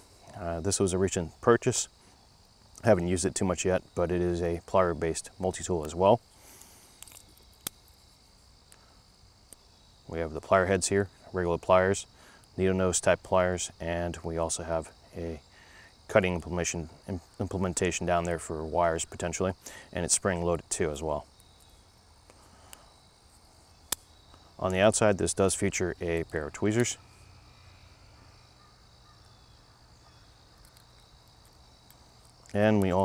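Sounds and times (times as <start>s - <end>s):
insects chirring: 0.0s - 33.0s
faint small clicks: 5.8s - 8.0s.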